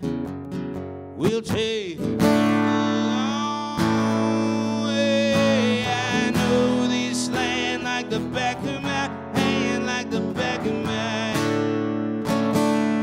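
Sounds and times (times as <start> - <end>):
acoustic guitar strummed: 0.0 - 13.0
man singing without words: 1.2 - 12.0.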